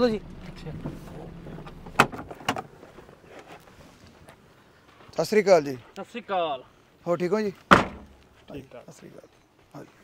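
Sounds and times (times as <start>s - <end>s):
car door latch clicks: 1.7s - 2.7s.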